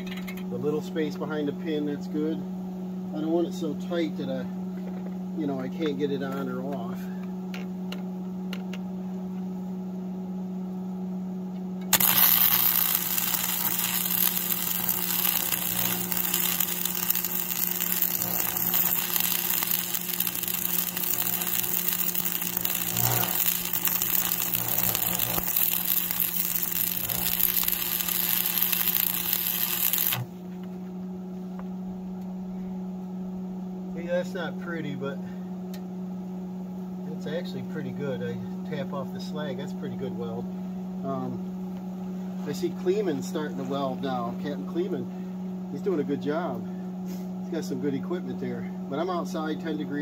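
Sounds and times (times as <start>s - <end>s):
electrical hum: 0.0s - 50.0s
welding arc crackling: 11.9s - 30.3s.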